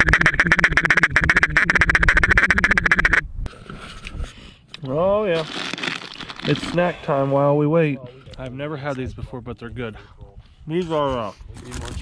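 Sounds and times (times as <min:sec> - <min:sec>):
duck call quacking notes: 0:00.0 - 0:03.2.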